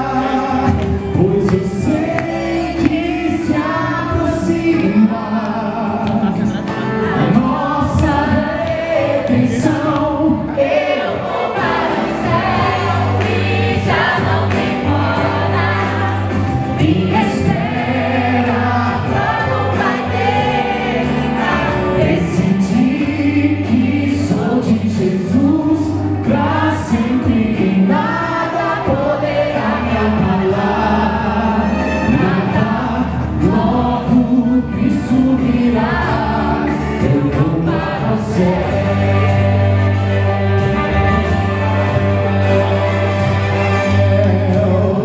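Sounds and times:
backing music with bass line: 0:00.0 - 0:45.0
choir singing: 0:00.0 - 0:45.0
person singing into microphone: 0:00.0 - 0:45.0.

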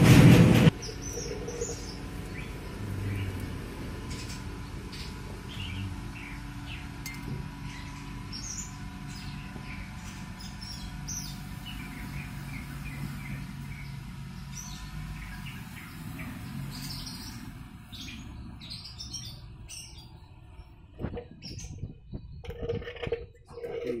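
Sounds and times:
low steady hum: 0:00.0 - 0:24.0
small birds chirping: 0:00.7 - 0:24.0.

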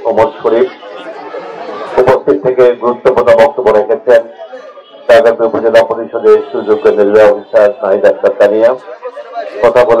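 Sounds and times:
man speaking into a microphone: 0:00.0 - 0:00.9, 0:01.9 - 0:10.0
murmur of crowd chatter: 0:00.0 - 0:10.0.

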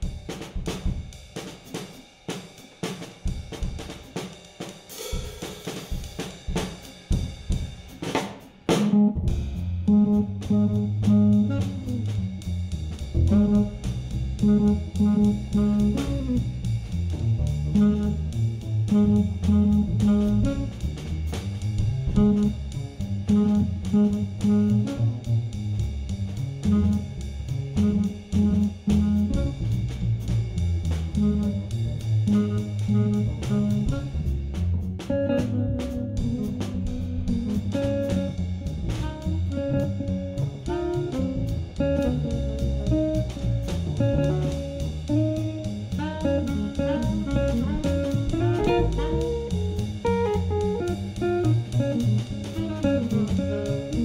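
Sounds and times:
drum kit keeping time: 0:00.0 - 0:54.0
upright bass walking: 0:06.0 - 0:54.0
electric jazz guitar: 0:07.9 - 0:54.0.

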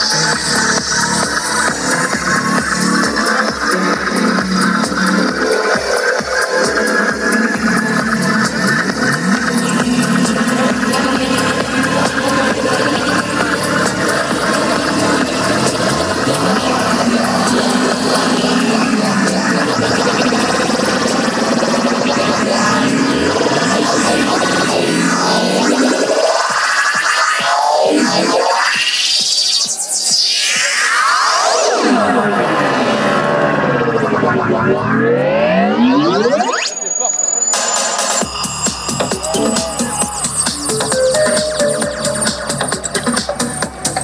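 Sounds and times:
rising synth sweep: 0:00.0 - 0:42.5
electronic dance music: 0:00.0 - 0:44.0.

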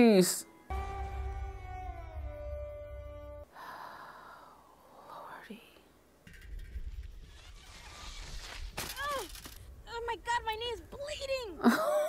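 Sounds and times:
held music chord: 0:00.7 - 0:03.5.

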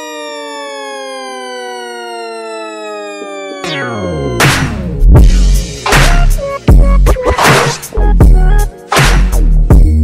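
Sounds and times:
siren-like tone sliding downward: 0:00.0 - 0:05.0.

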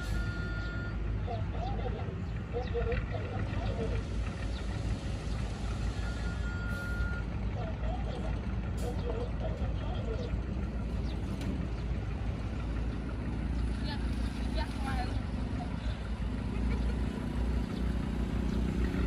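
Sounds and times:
short steady beep: 0:00.0 - 0:01.0, 0:06.0 - 0:07.3
dump truck engine running: 0:00.0 - 0:19.0
faint voices: 0:07.3 - 0:10.9.

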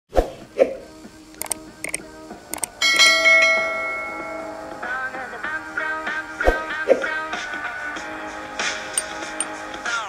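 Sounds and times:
mouse clicks: 0:01.4 - 0:02.7
bell chime: 0:02.8 - 0:04.8.

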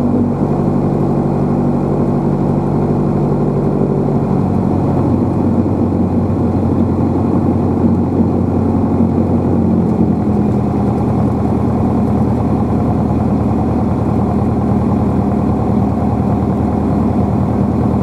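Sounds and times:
light aircraft engine droning: 0:00.0 - 0:18.0.

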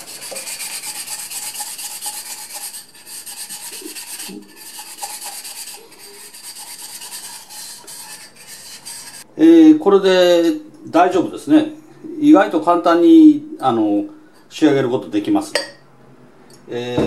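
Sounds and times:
glass scraping on wet sandpaper: 0:00.0 - 0:09.3.

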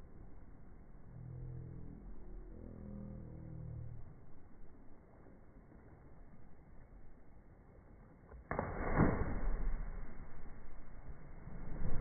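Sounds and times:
body splashing into water: 0:08.5 - 0:10.1.

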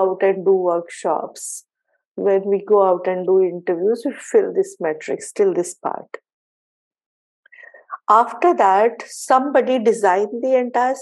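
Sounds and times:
woman speaking: 0:00.0 - 0:01.6, 0:02.2 - 0:06.2, 0:07.6 - 0:11.0.

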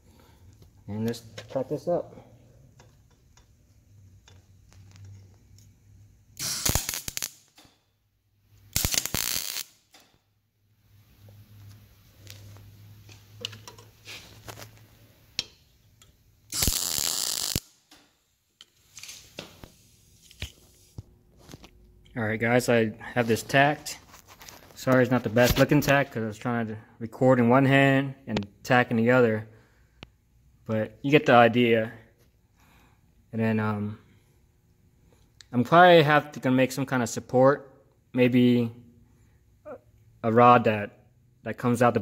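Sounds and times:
welding arc crackle: 0:06.4 - 0:07.7, 0:08.7 - 0:10.0, 0:16.5 - 0:17.9
welder low hum: 0:08.7 - 0:09.7, 0:16.5 - 0:17.7.

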